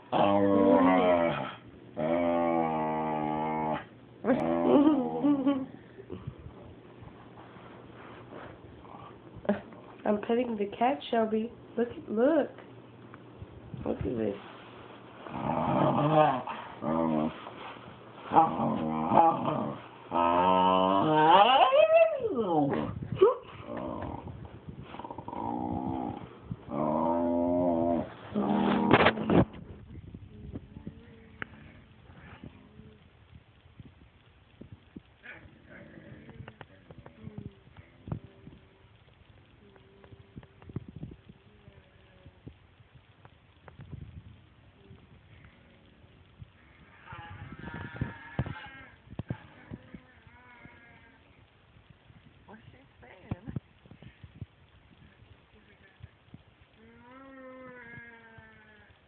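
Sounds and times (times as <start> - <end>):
dog growling moans: 0.0 - 6.4, 15.2 - 29.6, 35.2 - 38.3.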